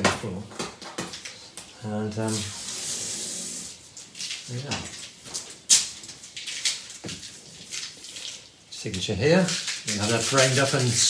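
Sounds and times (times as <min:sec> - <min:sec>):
masking tape peeling off paper: 0:09.4 - 0:11.0.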